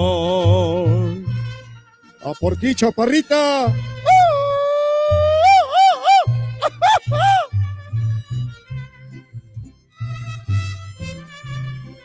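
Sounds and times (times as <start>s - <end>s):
low bass guitar line: 0.0s - 1.8s, 3.7s - 12.0s
person yelling and whooping: 4.1s - 7.5s.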